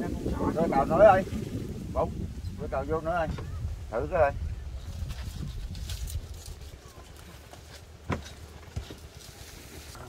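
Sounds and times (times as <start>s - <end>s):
wind rumbling on microphone: 0.0s - 10.0s
rustling fronds: 3.4s - 10.0s
light knocks of wooden poles: 6.7s - 9.2s.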